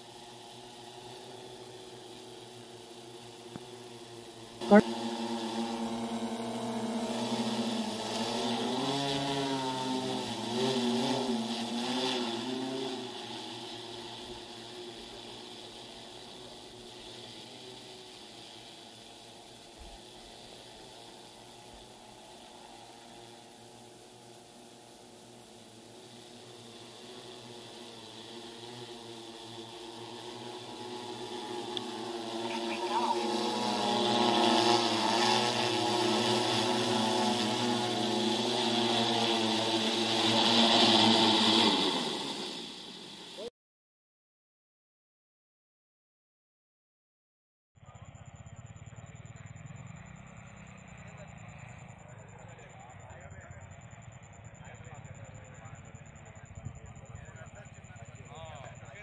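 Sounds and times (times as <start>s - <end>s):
drone rotors droning: 0.0s - 43.5s, 47.8s - 59.0s.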